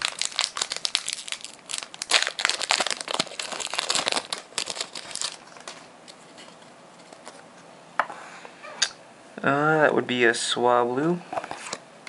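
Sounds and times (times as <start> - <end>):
wrapper crinkling and tearing: 0.0 - 5.9.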